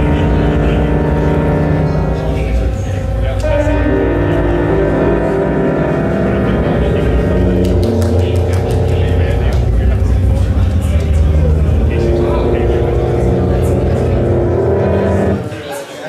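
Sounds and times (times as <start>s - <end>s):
synthesized music with low drone: 0.0s - 15.8s.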